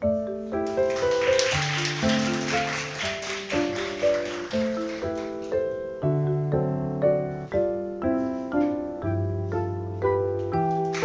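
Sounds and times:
background piano music: 0:00.0 - 0:11.0
applause: 0:00.6 - 0:05.6, 0:10.8 - 0:11.0.

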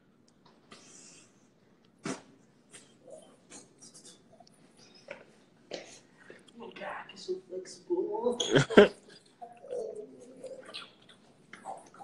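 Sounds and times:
faint whispering: 0:02.7 - 0:12.0.

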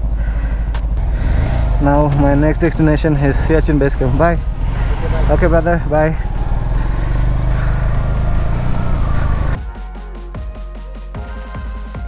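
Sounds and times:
motorcycle riding off: 0:00.0 - 0:09.6
electronic music with beat: 0:00.6 - 0:12.0.

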